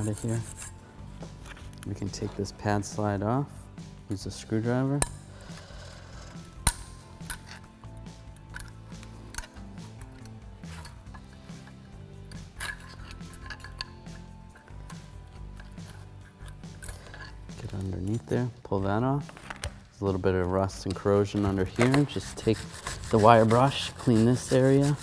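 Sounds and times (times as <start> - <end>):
soft background music: 0.0 - 25.0
screwdriver clicking and scraping metal: 5.0 - 18.3, 20.8 - 25.0.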